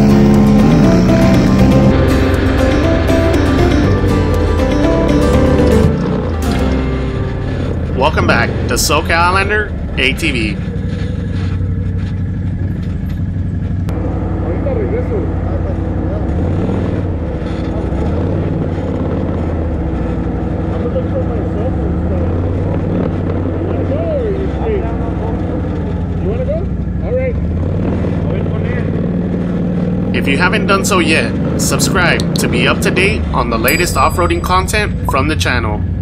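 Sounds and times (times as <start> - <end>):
atv engines idling and revving: 0.0 - 36.0.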